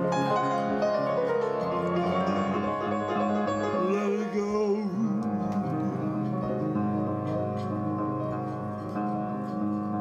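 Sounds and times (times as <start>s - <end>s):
piano music: 0.0s - 10.0s.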